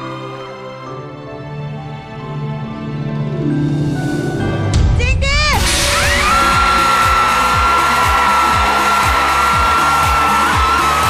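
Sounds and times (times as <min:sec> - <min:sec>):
electronic dance music: 0:05.6 - 0:11.0.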